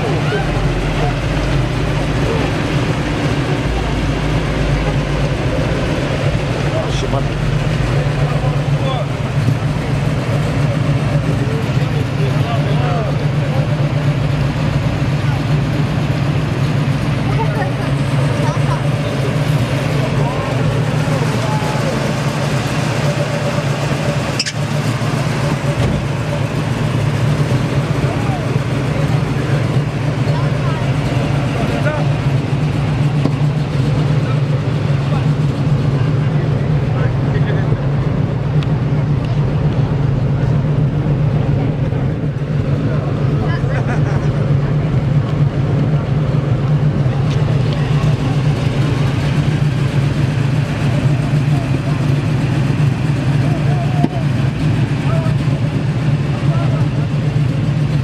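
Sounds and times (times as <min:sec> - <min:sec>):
car engine idling: 0:00.0 - 0:58.0
indistinct chatter: 0:00.0 - 0:58.0.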